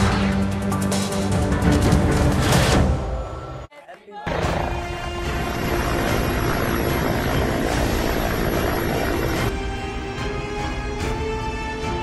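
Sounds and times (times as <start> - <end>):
helicopter rotor and engine noise: 4.3 - 9.5.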